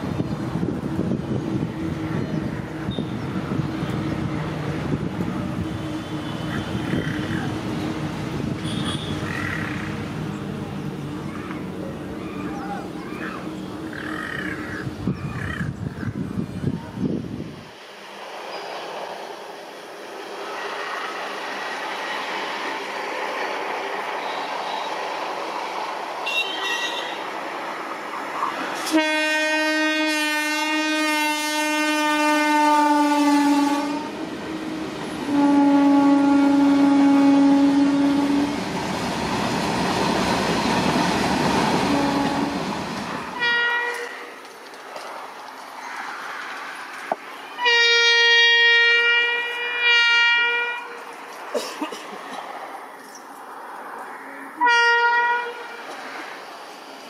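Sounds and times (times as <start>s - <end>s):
approaching train noise: 0.0s - 57.0s
locomotive horn blast: 8.5s - 9.5s, 26.2s - 27.3s, 28.8s - 34.2s, 35.2s - 38.6s, 41.8s - 42.7s, 43.4s - 44.3s, 47.6s - 51.0s, 54.6s - 55.8s.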